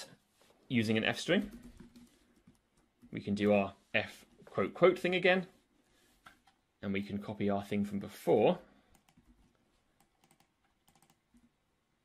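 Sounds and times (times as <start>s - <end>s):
keyboard keystrokes: 10.0s - 11.2s.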